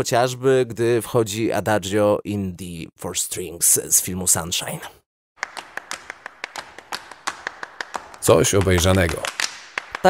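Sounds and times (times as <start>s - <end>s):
rapid sharp taps: 5.4s - 10.0s.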